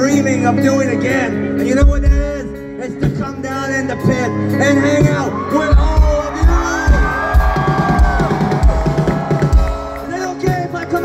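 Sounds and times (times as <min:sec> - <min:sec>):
live pop-punk band playing: 0:00.0 - 0:11.0.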